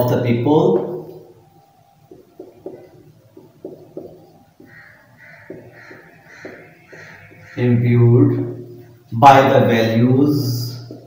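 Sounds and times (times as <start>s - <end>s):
marker writing on whiteboard: 0.6s - 7.8s, 10.8s - 11.0s.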